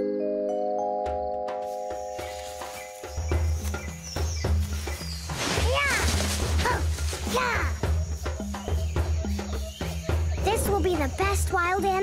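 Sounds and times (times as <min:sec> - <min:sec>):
suspenseful cartoon music: 0:05.6 - 0:12.0.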